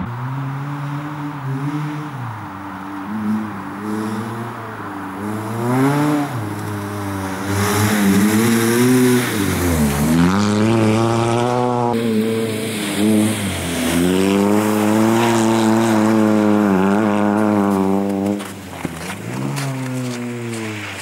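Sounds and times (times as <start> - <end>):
car engine revving hard: 0.0 - 21.0.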